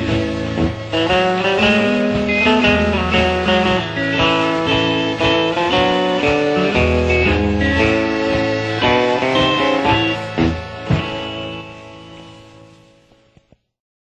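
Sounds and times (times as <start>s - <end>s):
country band playing: 0.0s - 13.1s
closing band chords: 0.0s - 13.2s.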